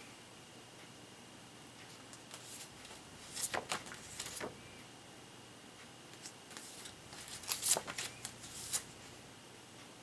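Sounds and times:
paper rustling: 1.9 - 4.6, 6.2 - 9.1.

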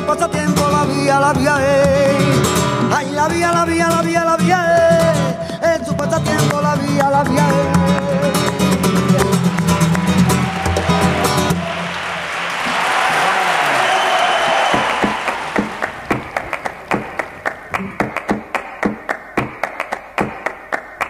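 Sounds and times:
person singing: 0.0 - 9.3
acoustic guitar: 0.0 - 20.7
audience applause: 8.8 - 21.0
rhythmic sharp taps: 14.7 - 21.0.

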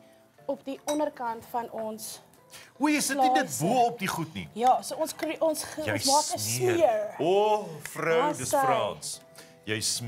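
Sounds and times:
metal spoon clinking ceramic bowl: 0.8 - 1.1.

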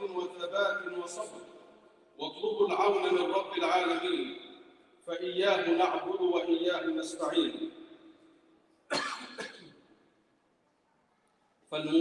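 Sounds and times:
man coughing: 8.9 - 9.9.

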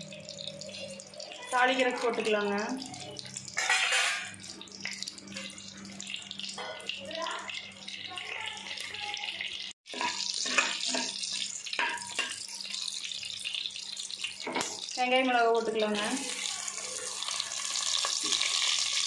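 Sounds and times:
spices sizzling in hot oil: 0.0 - 19.0.

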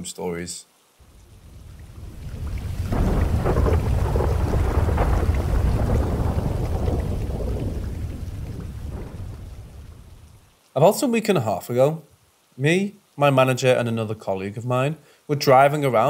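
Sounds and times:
steady rain: 0.0 - 16.0
thunder rumbling: 1.0 - 10.5.

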